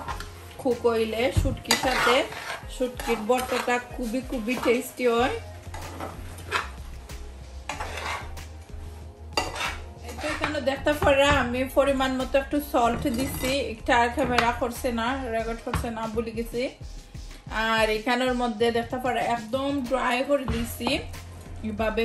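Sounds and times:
utensils scraping frying pan: 1.1 - 6.9, 7.6 - 11.5, 12.8 - 14.8.

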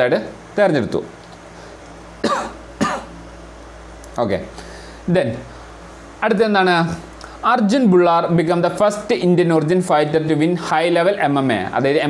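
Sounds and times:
person coughing: 2.2 - 3.1.

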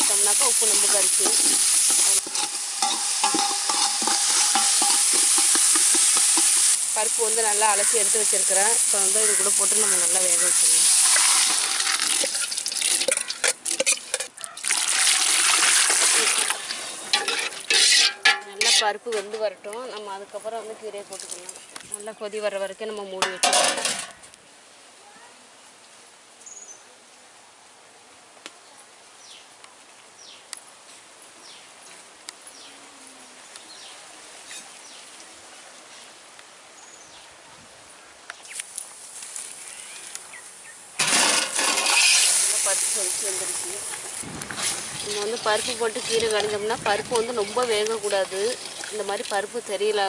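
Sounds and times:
pot boiling over with hiss: 0.0 - 19.1, 38.4 - 50.0
ladle stirring liquid in metal pot: 1.3 - 6.6, 47.4 - 49.4.

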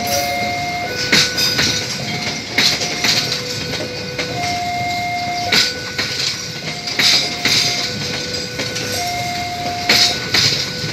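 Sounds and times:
train wheels clacking over rail joints: 0.0 - 10.9.

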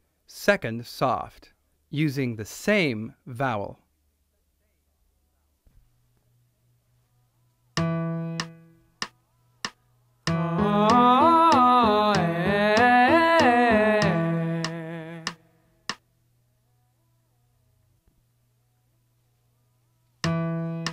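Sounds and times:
metronome clicks: 7.8 - 12.2, 20.2 - 20.9
held accompaniment chord: 10.3 - 15.3
person humming an arpeggio: 10.3 - 15.4.

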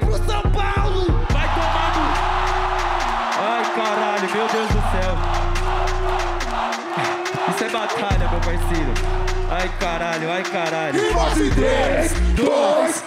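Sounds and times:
hip-hop beat with heavy bass: 0.0 - 13.0
crowd cheering and shouting: 0.3 - 13.0.

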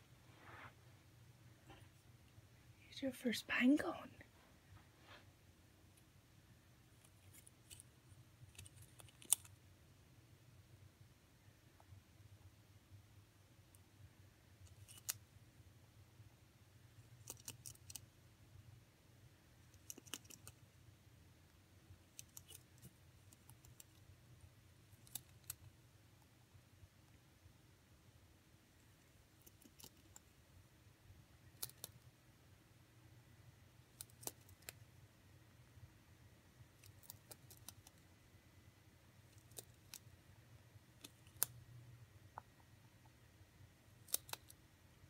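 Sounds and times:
rabbit gnawing pine cone: 5.8 - 9.6, 13.4 - 15.4, 16.2 - 27.3, 28.1 - 32.2, 33.7 - 35.8, 36.5 - 38.3, 38.9 - 43.2, 43.8 - 44.6.

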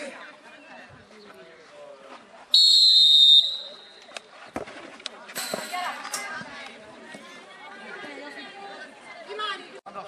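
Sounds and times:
referee's whistle blast: 2.6 - 4.0.

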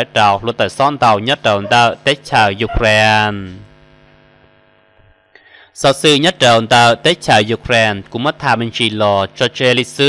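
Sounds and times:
man narrating: 0.0 - 3.7, 5.8 - 10.0
faint steady hum: 0.0 - 10.0.

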